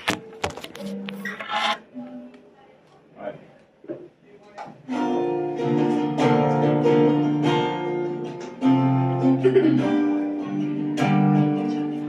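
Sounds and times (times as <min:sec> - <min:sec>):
phone scraping on table: 0:00.6 - 0:01.8.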